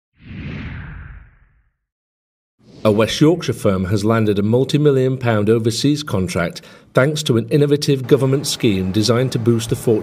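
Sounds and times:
whoosh with low rumble: 0.2 - 1.8.

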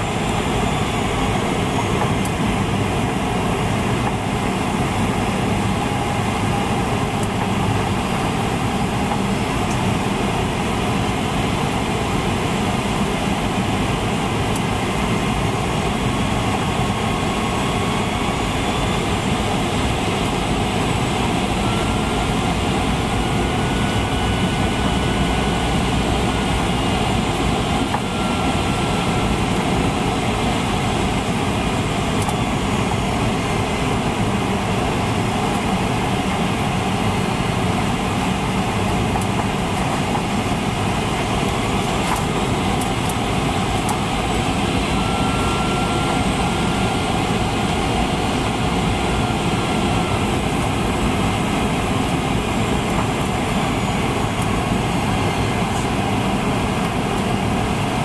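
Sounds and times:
airliner cabin roar: 0.0 - 58.0
faint whine: 0.0 - 58.0.

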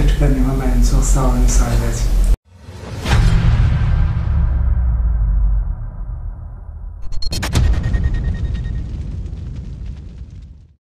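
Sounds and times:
deep cinematic boom rumble: 2.8 - 10.8.

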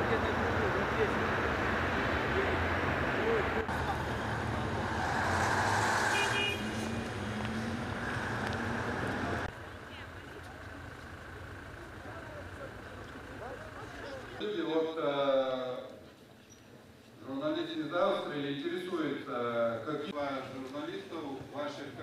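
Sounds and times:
traffic and street noise: 0.0 - 22.0.

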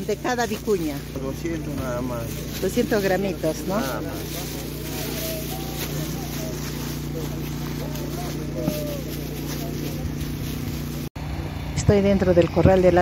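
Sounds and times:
faint voices: 0.0 - 11.1
low engine hum: 0.0 - 13.0.

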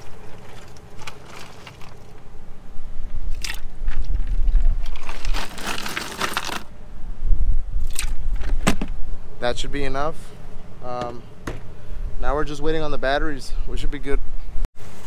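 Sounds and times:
ice cubes crunching and rattling: 0.0 - 2.2, 3.4 - 6.7.

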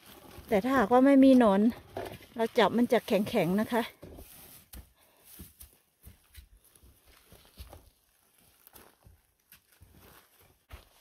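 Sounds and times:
footsteps crunching on pine needles: 4.2 - 11.0.

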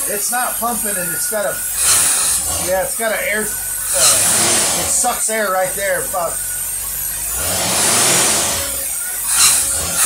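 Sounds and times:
car engine revving: 1.6 - 10.0.

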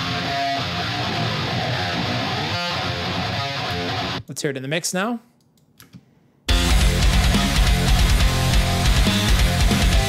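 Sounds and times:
heavy metal music: 0.0 - 4.2, 6.5 - 10.0.

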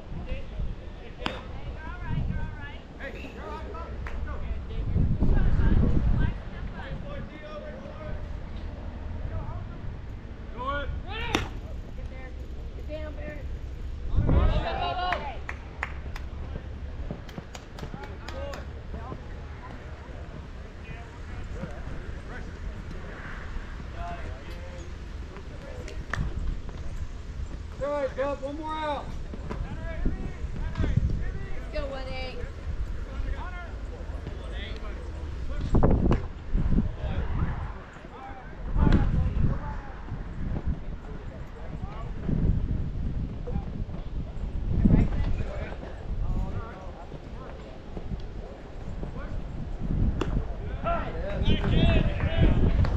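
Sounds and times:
wind rumble on microphone: 0.0 - 52.9.

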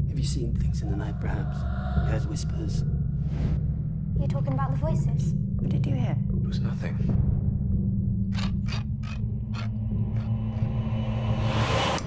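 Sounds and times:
low drone: 0.0 - 4.5.

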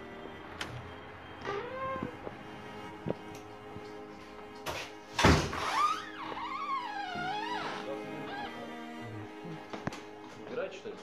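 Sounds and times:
background music: 0.0 - 11.0
glass door shutting: 0.6 - 2.3, 4.6 - 8.8.

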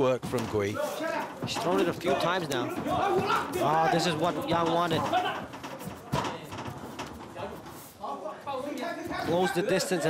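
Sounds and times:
faint hall noise: 0.0 - 10.0
thuds of fighters grappling: 0.2 - 7.6.

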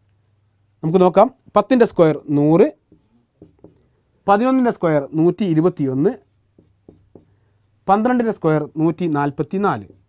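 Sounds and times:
marker scratching on whiteboard: 2.9 - 3.9, 5.8 - 10.0
man speaking: 7.9 - 10.0.

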